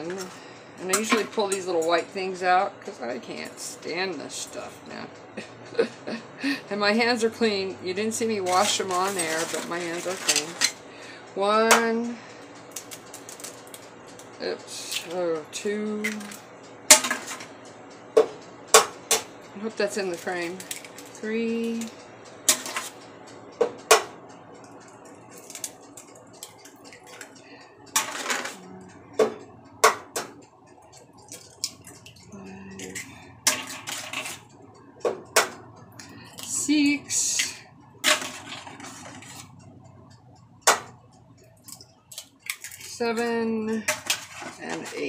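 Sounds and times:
shells scraping and rustling: 0:08.5 - 0:10.8
eggshells cracking: 0:41.7 - 0:43.0.

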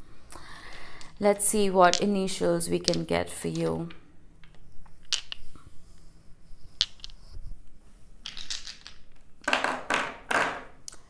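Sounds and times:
dice rattling and rolling on table: 0:01.0 - 0:05.6, 0:06.7 - 0:07.3, 0:08.2 - 0:10.8.

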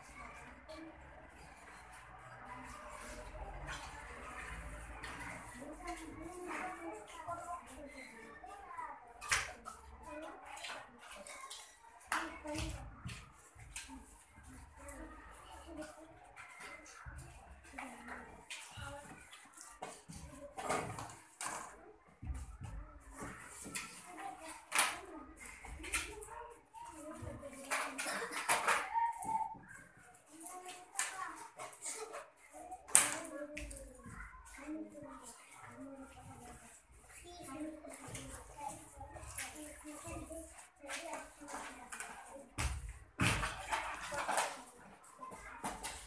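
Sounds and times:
faint children's voices: 0:00.0 - 0:46.0.

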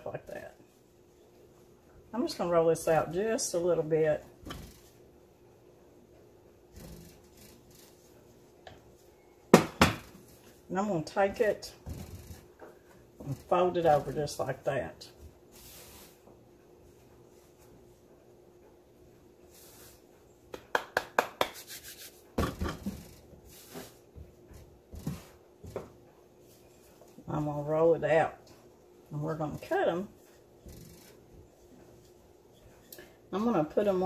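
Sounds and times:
woman's voice: 0:02.1 - 0:04.3, 0:10.7 - 0:11.8, 0:13.2 - 0:15.2, 0:27.2 - 0:28.4, 0:29.1 - 0:30.2, 0:33.3 - 0:34.0.

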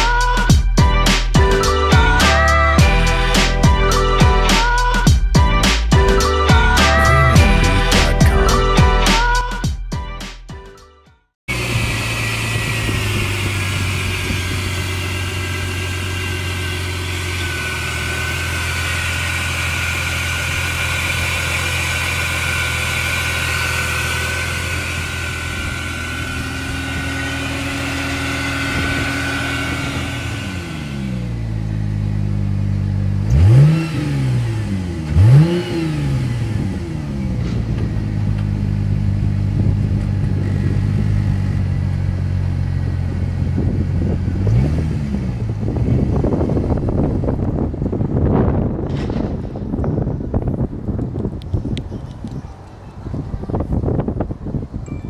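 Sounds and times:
engine revving: 0:00.0 - 0:09.6, 0:11.5 - 0:50.1
car engine idling: 0:11.5 - 0:33.7, 0:36.4 - 0:44.6.

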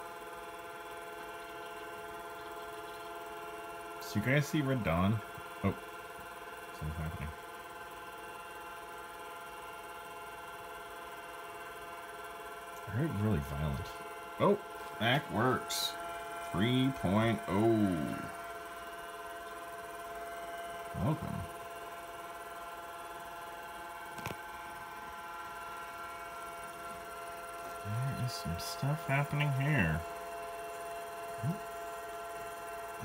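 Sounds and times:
computer humming: 0:00.0 - 0:33.0.

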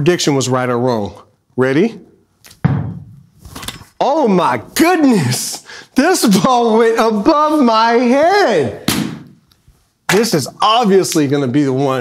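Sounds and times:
volleyball hitting floor: 0:02.6 - 0:03.3, 0:08.8 - 0:09.4
ball caught in hands: 0:08.9 - 0:09.4.

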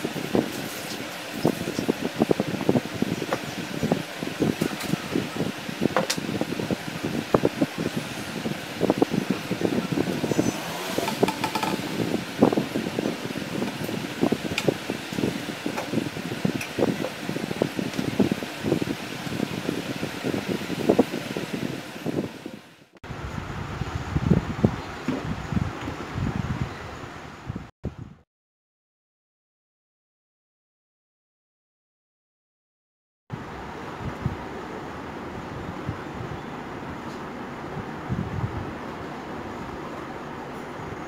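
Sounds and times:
plastic pipes knocking and rubbing: 0:11.0 - 0:12.0.

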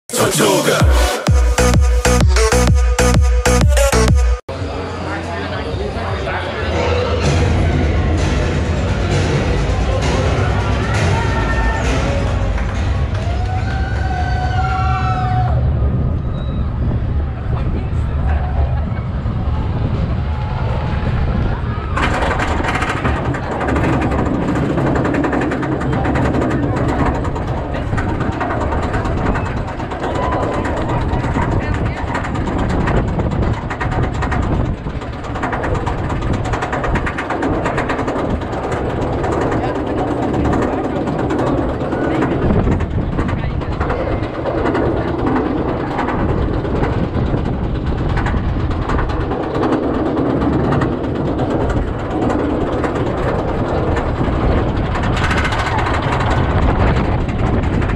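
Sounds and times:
roller coaster lift chain clatter: 0:05.4 - 0:57.9.

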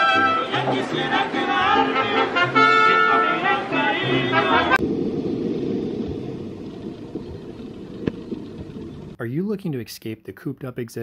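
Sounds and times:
muffled seaside rumble: 0:03.1 - 0:09.2.

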